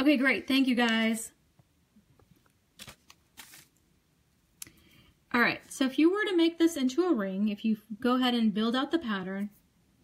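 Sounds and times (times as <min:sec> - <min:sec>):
soft rustle: 0:02.2 - 0:03.8.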